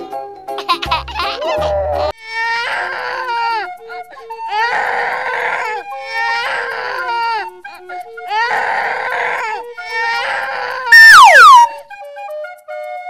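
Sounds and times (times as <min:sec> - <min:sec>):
light background music: 0:00.0 - 0:13.0
cartoon child sobbing: 0:01.2 - 0:03.7, 0:04.5 - 0:07.5, 0:08.3 - 0:11.0
sound effect sliding down: 0:10.9 - 0:11.7.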